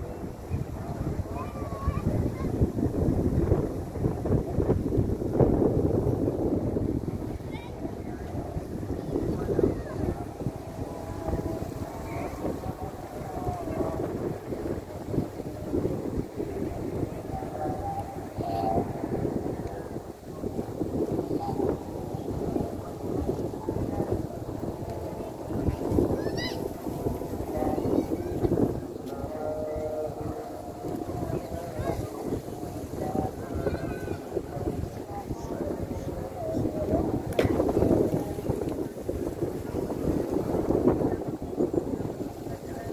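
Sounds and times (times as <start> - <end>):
faint distant voices: 0.0 - 42.9
wind buffeting microphone: 0.0 - 42.9.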